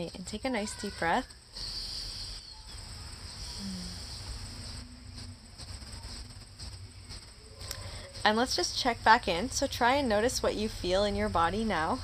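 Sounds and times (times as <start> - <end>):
insects chirring: 0.0 - 12.0
deep breath with soft hiss: 1.5 - 2.6, 3.3 - 4.8, 7.6 - 8.2
low steady rumble: 3.0 - 12.0.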